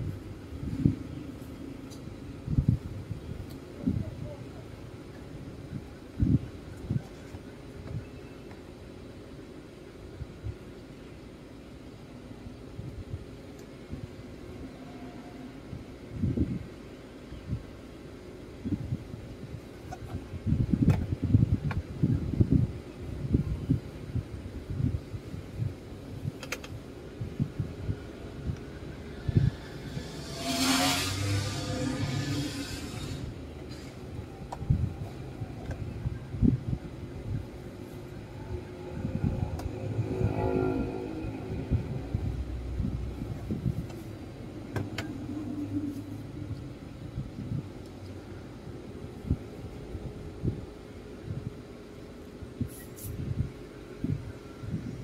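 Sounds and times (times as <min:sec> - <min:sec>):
vehicle passing: 0:28.2 - 0:33.4, 0:38.0 - 0:43.6.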